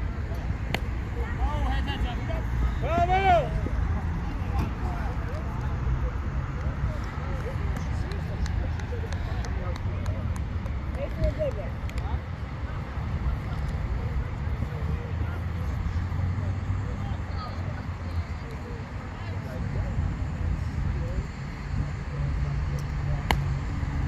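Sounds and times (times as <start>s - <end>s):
distant voices talking: 0.0s - 24.0s.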